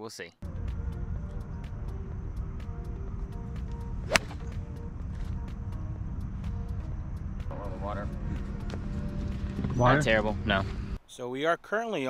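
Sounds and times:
golf club striking ball: 4.1 - 4.6.

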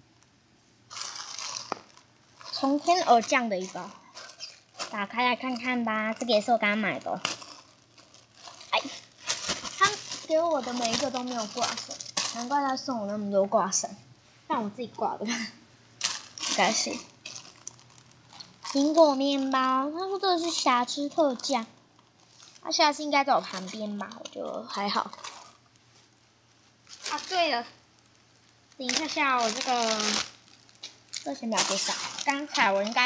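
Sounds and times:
cellophane crinkling: 0.9 - 13.3, 15.9 - 33.0
girl talking: 2.5 - 4.2, 4.8 - 7.3, 8.6 - 15.6, 16.4 - 17.2, 18.7 - 21.8, 22.6 - 25.2, 27.0 - 27.8, 28.8 - 30.3, 31.2 - 33.0.

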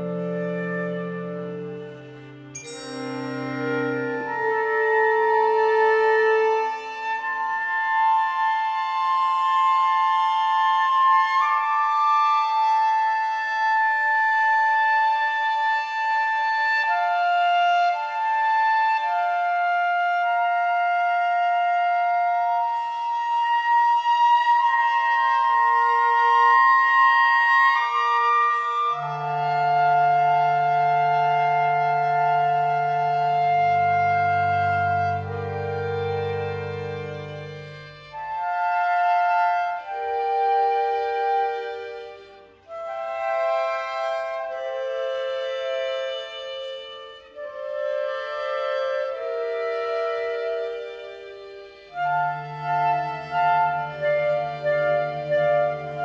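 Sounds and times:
low sustained notes: 0.0 - 15.8
clarinets and strings held notes: 0.0 - 56.0.

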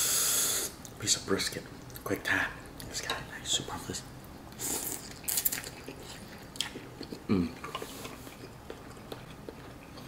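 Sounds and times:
breathy blowing hiss: 0.0 - 0.8.

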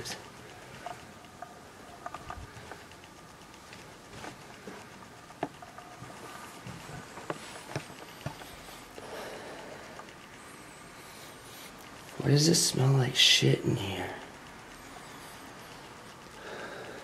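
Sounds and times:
sharp light clicks and taps: 0.0 - 17.0
footsteps on carpet: 3.6 - 4.8, 6.0 - 8.6.

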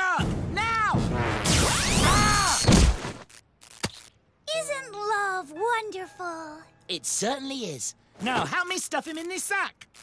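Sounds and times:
cartoon electric zap whine: 1.3 - 4.1.

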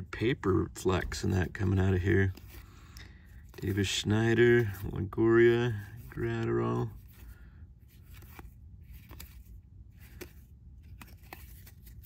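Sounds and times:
papery card swishes: 5.8 - 12.0
card edges clicking: 7.9 - 12.0.

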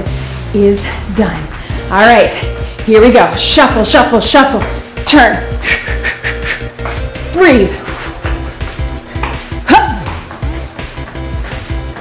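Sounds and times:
workout music with steady beat: 0.0 - 12.0
person speaking: 7.2 - 8.1.

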